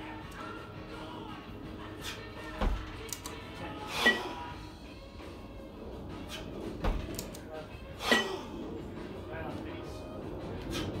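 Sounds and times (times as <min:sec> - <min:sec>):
background music: 0:00.0 - 0:11.0
kettlebells thudding: 0:02.4 - 0:03.0, 0:06.4 - 0:07.1.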